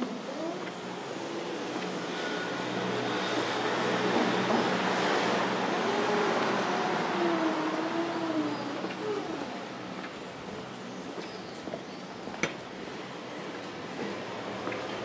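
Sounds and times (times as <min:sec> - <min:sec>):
vehicle passing road noise: 0:00.1 - 0:10.5.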